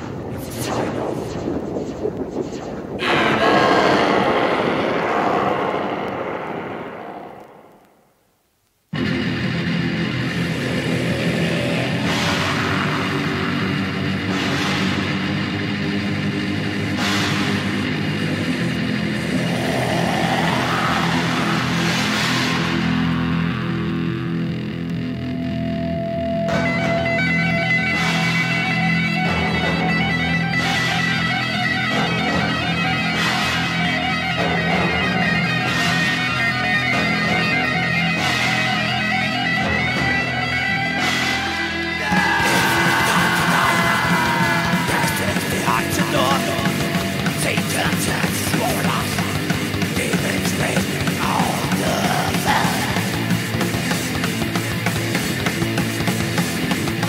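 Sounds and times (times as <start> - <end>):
heavy metal music: 0.0 - 8.0, 8.9 - 57.0
loud sound: 0.0 - 54.9.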